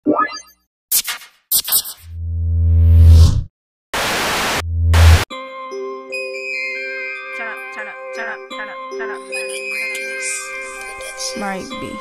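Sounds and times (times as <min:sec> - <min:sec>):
glitchy static bursts: 0:04.0 - 0:05.3.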